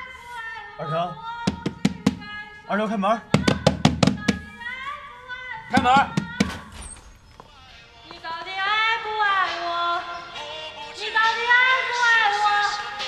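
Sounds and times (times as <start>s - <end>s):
knocks on wooden door: 1.5s - 2.3s, 3.4s - 4.5s, 5.7s - 6.7s
backing music: 5.5s - 6.8s.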